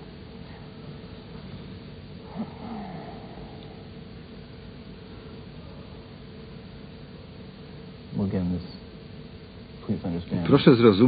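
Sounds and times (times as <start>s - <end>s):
recording hiss: 0.0s - 11.0s
man's breathy vocal sound: 2.2s - 3.9s.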